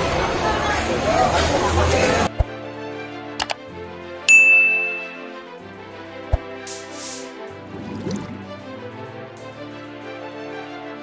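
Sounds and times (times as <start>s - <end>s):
soft background music: 2.3s - 11.0s
notification bell ding: 4.3s - 5.3s.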